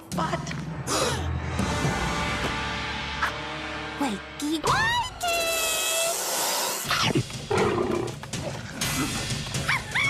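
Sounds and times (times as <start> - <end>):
background music: 0.0 - 10.0
cartoon snake hiss: 5.6 - 7.0.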